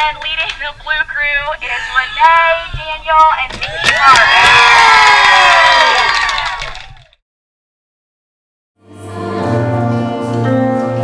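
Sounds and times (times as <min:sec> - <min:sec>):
crowd cheering and screaming: 0:03.7 - 0:07.0.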